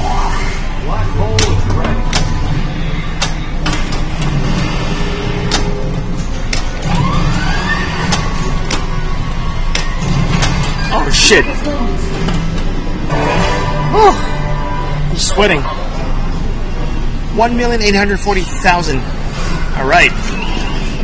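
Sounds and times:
swooping electronic effect: 0.0 - 17.4
pinball game music and effects: 0.0 - 21.0
flippers and ball clacking: 5.4 - 11.0.

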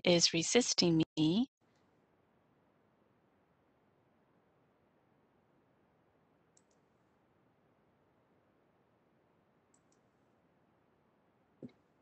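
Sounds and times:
faint clicks: 6.5 - 6.8, 9.7 - 10.1.

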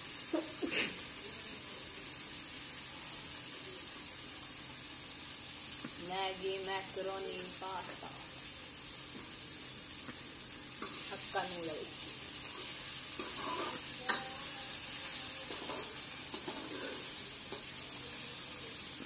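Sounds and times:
vegetables sizzling in hot oil: 0.0 - 19.0.

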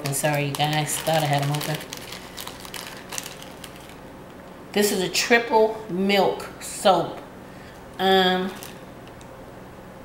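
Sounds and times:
wrapper crinkling: 0.0 - 4.1, 8.5 - 8.8.

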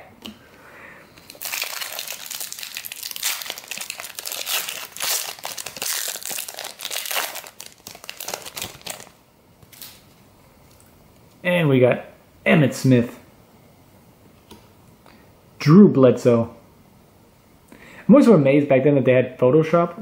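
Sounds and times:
foil wrapper crinkling: 1.2 - 10.0.

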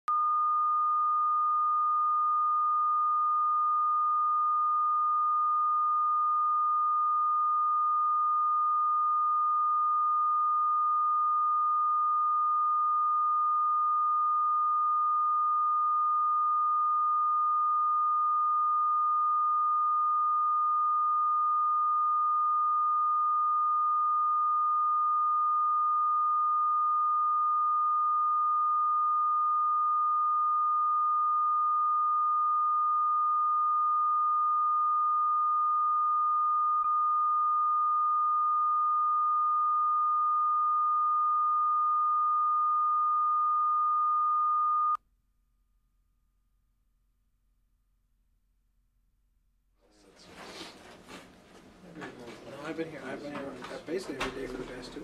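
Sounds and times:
steady test tone: 0.1 - 45.0.

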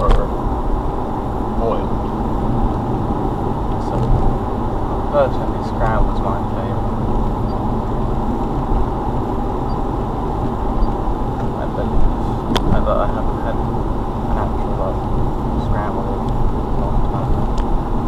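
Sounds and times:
car cabin road and engine rumble: 0.0 - 18.0.

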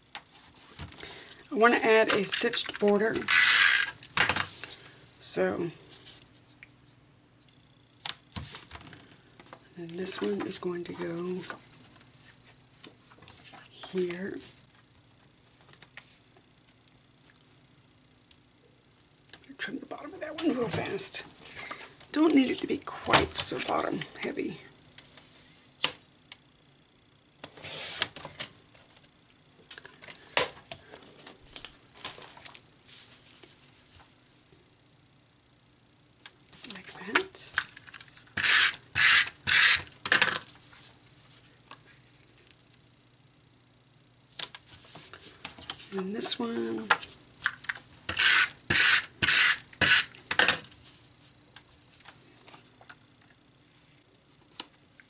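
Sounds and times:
paper rustling: 30.8 - 34.1
paper trimmer blade scraping: 38.4 - 39.9, 48.1 - 50.2.

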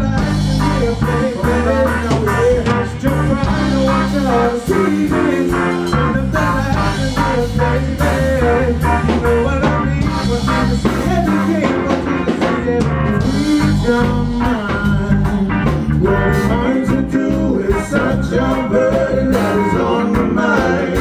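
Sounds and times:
live band playing: 0.0 - 21.0.

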